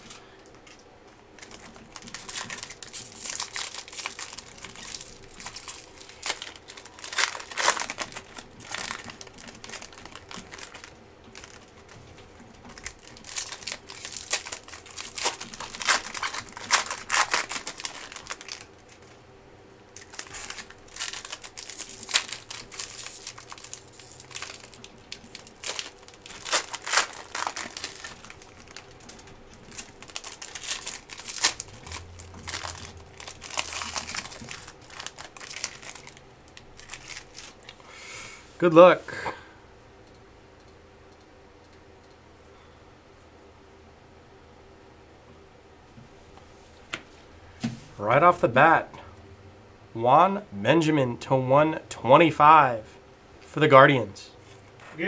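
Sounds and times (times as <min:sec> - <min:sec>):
foil wrapper crinkling and tearing: 0:01.4 - 0:12.0, 0:12.7 - 0:19.1, 0:20.0 - 0:37.8.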